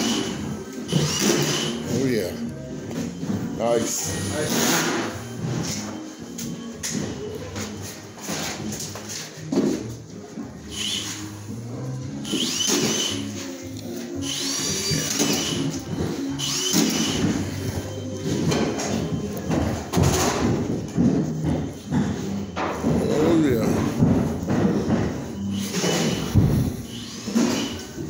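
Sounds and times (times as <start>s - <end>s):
music playing: 0.0s - 28.0s
screw gun whining: 12.2s - 13.3s, 14.2s - 17.4s.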